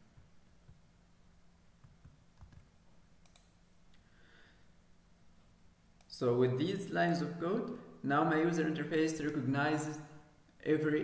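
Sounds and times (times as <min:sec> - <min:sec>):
keyboard and mouse clicks: 0:01.8 - 0:03.6.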